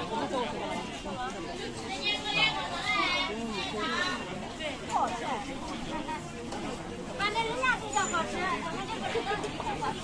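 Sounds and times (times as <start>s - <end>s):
general hubbub: 0.0s - 10.0s
people talking: 0.0s - 10.0s.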